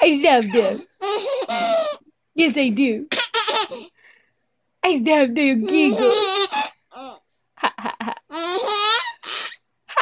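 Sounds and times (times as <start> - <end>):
baby giggling: 0.4 - 2.0, 3.1 - 3.9, 5.7 - 10.0.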